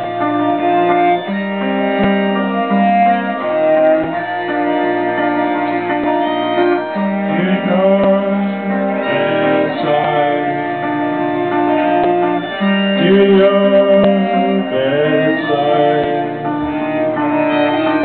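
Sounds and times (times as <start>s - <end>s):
cello holding long notes: 0.0s - 18.0s
electric guitar: 0.0s - 18.0s.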